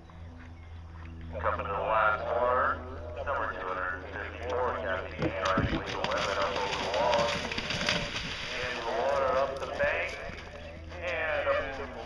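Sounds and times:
horse hoofbeats on turf: 4.6 - 12.0.

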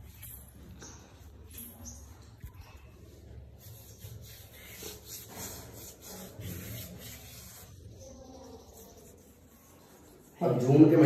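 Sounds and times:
faint rubbing and scraping: 0.0 - 11.0.

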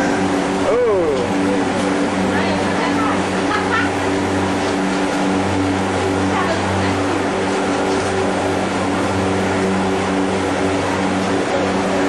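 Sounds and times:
loud hum and rushing noise: 0.0 - 12.0
person laughing: 3.4 - 4.1.

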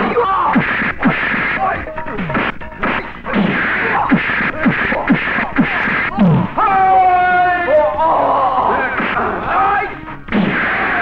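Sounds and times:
men shouting: 3.6 - 11.0.

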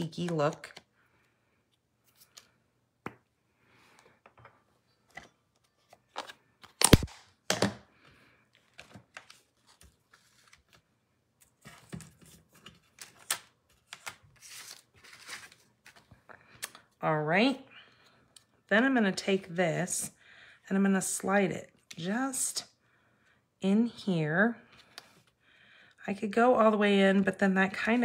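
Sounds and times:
paper rustling: 8.6 - 16.1.

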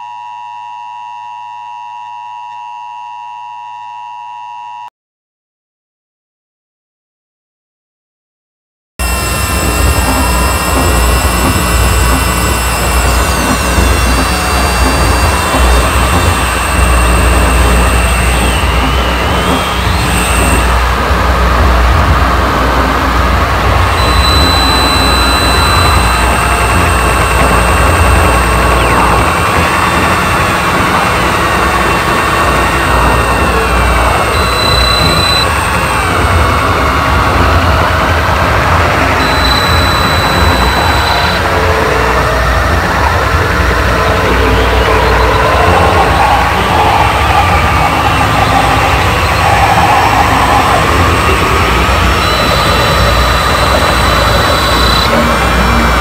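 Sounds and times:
harsh electronic noise music: 9.0 - 56.0.

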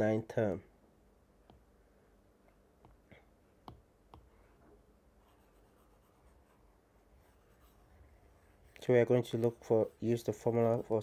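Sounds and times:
man speaking: 0.0 - 0.7, 8.8 - 11.0
stylus tapping on tablet screen: 1.4 - 1.7, 3.6 - 4.4.

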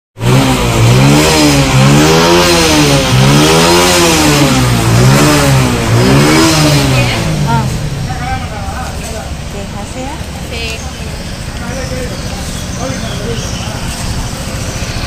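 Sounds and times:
motorcycle engine revving: 0.2 - 15.0.

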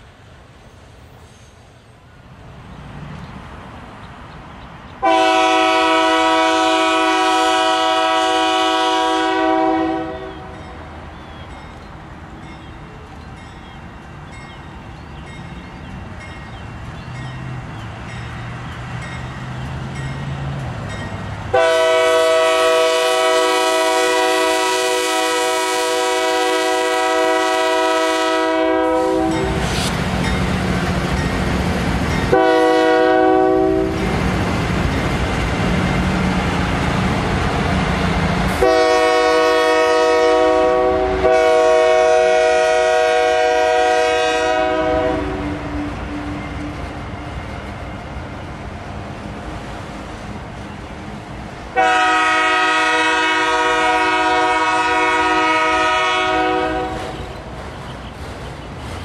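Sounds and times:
train rumbling past on rails: 0.0 - 59.0
locomotive air horn blasts: 5.0 - 10.7, 21.5 - 29.9, 32.3 - 34.1, 38.5 - 46.8, 51.8 - 57.3.

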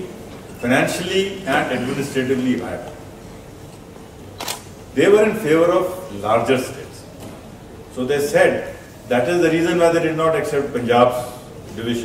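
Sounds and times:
man talking: 0.0 - 3.0, 5.0 - 7.1, 7.9 - 12.0
faint room hum: 0.0 - 12.0.

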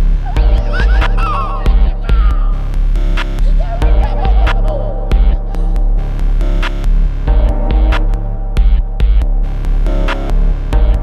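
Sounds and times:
minimal electronic music: 0.0 - 11.0
throbbing bass hum: 0.0 - 11.0.

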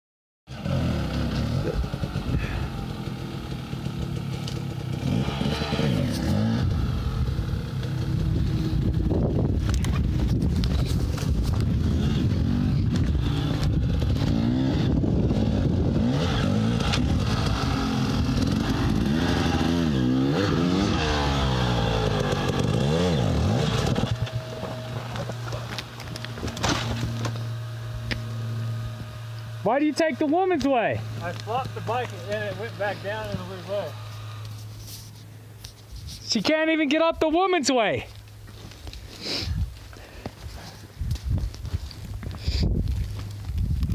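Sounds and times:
dirt bike engine revving: 0.5 - 34.8.

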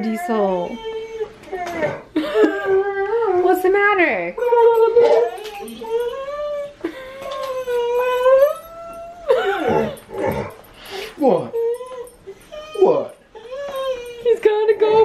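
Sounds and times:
large dog whining: 0.0 - 15.0.

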